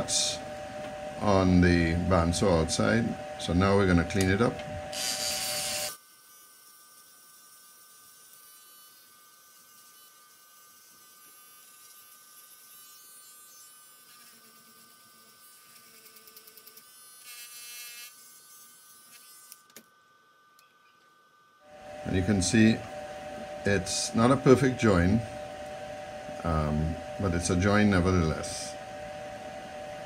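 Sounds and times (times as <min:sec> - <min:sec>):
rotary tool whining: 0:02.1 - 0:19.9.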